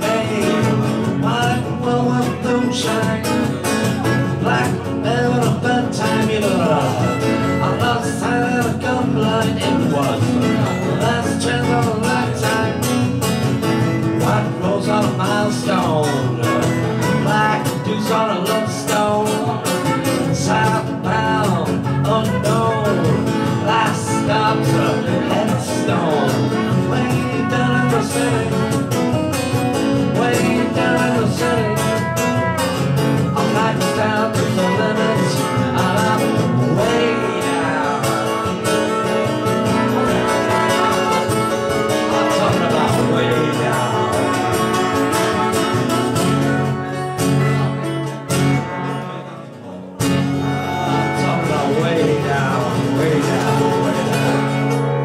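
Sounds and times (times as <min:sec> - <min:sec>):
acoustic guitar strumming: 0:00.0 - 0:55.0
man singing: 0:00.0 - 0:55.0.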